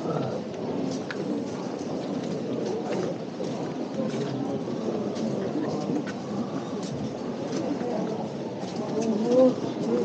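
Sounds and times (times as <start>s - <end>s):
crowd talking: 0.0s - 10.0s
footsteps on cobblestones: 0.0s - 10.0s.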